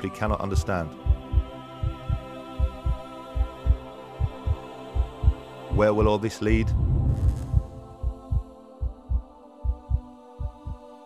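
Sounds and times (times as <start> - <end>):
steady low drone: 1.0 - 10.8
heartbeat thumps: 1.0 - 10.9.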